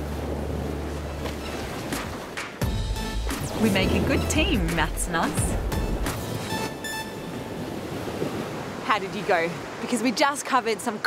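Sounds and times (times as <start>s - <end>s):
ocean surf rushing: 0.0s - 11.0s.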